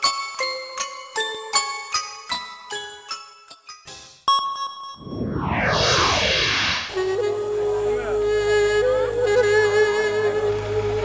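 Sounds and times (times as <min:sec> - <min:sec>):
descending whoosh: 0:05.0 - 0:07.4
music with long held note: 0:07.0 - 0:11.0.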